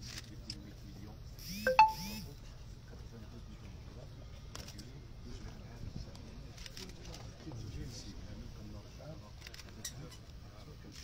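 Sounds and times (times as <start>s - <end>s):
electronic two-note chime: 1.7s - 2.2s.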